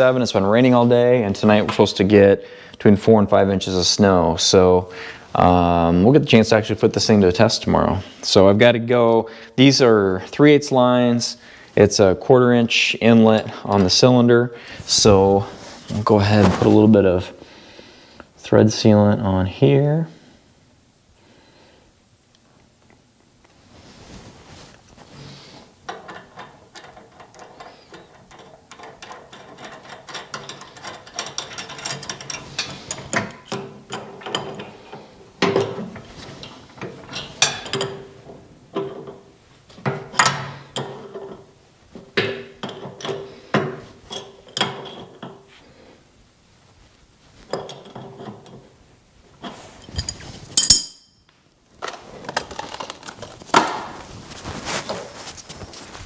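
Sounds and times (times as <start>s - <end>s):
wrench clinking on metal: 25.9s - 34.8s, 37.1s - 38.2s, 49.8s - 51.3s.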